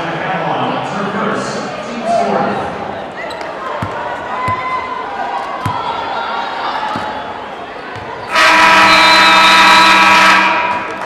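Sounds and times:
scoreboard horn buzzing: 0:08.3 - 0:10.9.

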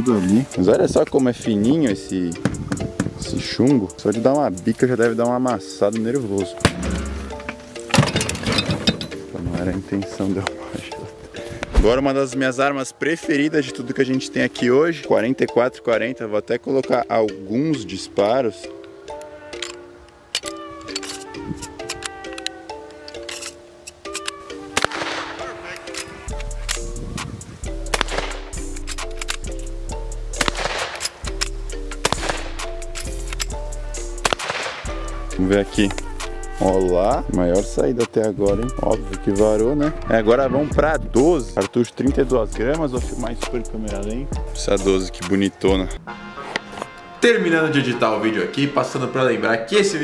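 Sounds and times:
background music: 0:00.0 - 0:50.0
light metal clanks: 0:06.6 - 0:09.7
rifle shots cracking: 0:24.7 - 0:25.9, 0:27.9 - 0:29.5, 0:30.4 - 0:32.9, 0:34.2 - 0:35.0.

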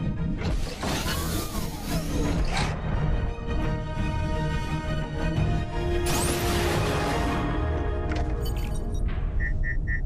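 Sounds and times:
dramatic film score: 0:00.0 - 0:10.0.

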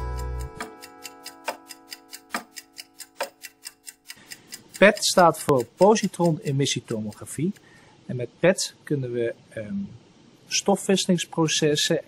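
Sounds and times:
sustained music tones: 0:00.0 - 0:04.0
clock-like ticking: 0:00.0 - 0:07.6
man speaking: 0:04.8 - 0:12.0.

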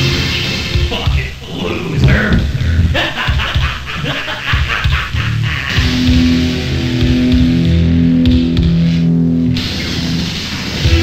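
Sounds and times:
distorted guitar: 0:00.0 - 0:11.0
loud rock music: 0:00.0 - 0:11.0.

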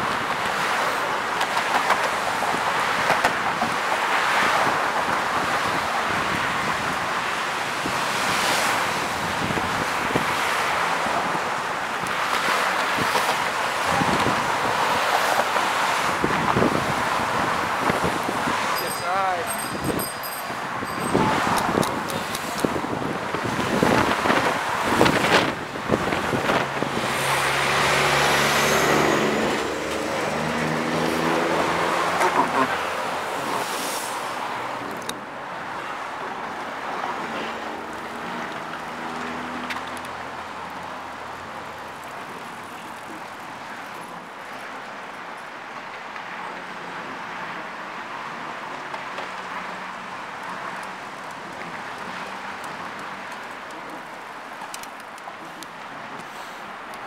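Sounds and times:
outdoor traffic hum: 0:00.0 - 0:57.0
road traffic passing: 0:00.0 - 0:57.0.

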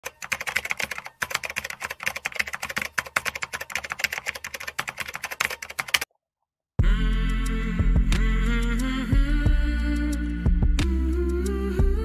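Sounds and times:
fast typing on computer keyboard: 0:00.0 - 0:06.1.

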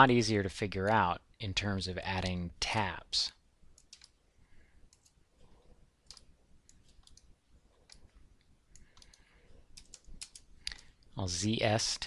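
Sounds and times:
computer mouse clicks: 0:03.8 - 0:04.2, 0:04.9 - 0:11.1.

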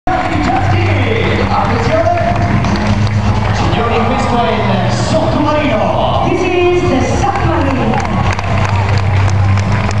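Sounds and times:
crowd noise: 0:00.1 - 0:10.0.

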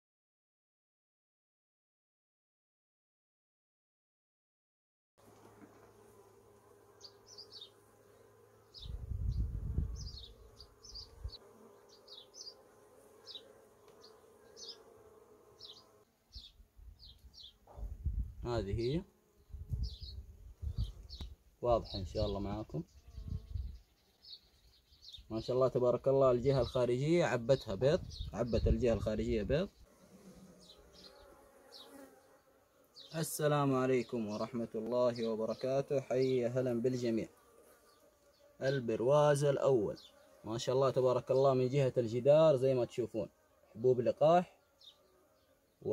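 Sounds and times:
bees buzzing: 0:05.2 - 0:17.5, 0:29.8 - 0:41.6
honeybees humming: 0:05.2 - 0:17.7, 0:18.8 - 0:21.4, 0:29.7 - 0:45.9.

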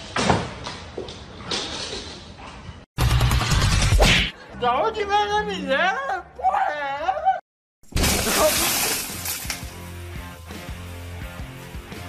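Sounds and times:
glass shattering: 0:07.9 - 0:09.7.

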